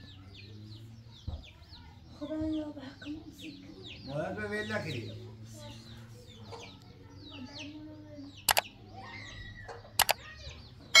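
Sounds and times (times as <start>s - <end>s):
birds chirping faintly: 0.0s - 11.0s
sharp double-click sound effects: 8.5s - 8.7s, 10.0s - 10.2s.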